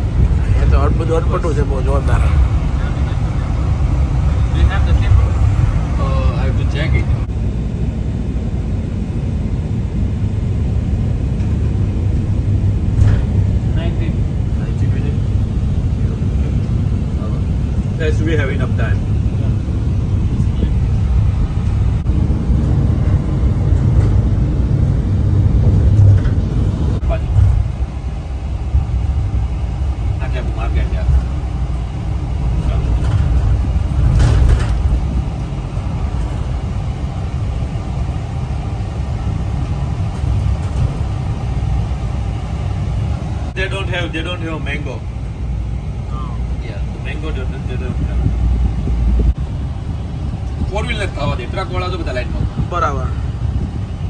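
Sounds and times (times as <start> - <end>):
road and engine noise in vehicle: 0.0 - 54.0.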